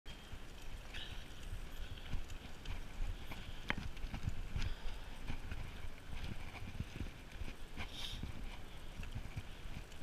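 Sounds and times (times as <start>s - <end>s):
bike rolling on tarmac: 0.1s - 10.0s.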